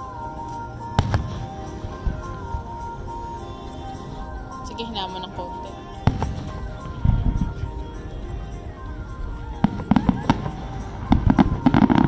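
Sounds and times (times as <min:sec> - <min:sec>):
music with held melody: 0:00.0 - 0:12.0
firework bangs: 0:06.0 - 0:07.6.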